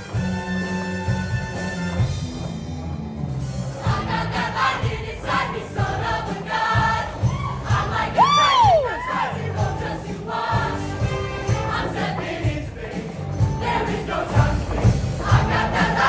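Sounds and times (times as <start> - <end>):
instrumental accompaniment with beat: 0.0 - 16.0
choir singing: 3.8 - 16.0.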